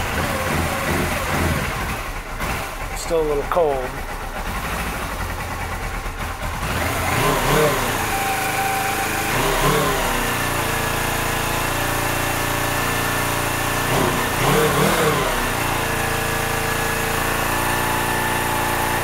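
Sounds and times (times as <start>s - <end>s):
engine revving: 0.0s - 19.0s
motorcycle engine idling: 0.0s - 19.0s.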